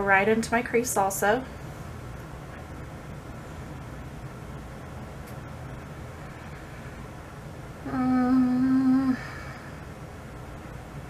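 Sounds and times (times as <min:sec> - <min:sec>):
faint low room hum: 0:00.0 - 0:11.0
woman humming a note: 0:07.9 - 0:09.4.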